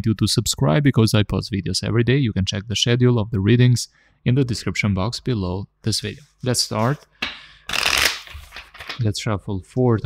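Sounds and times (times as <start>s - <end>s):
cards being shuffled: 7.7s - 9.0s.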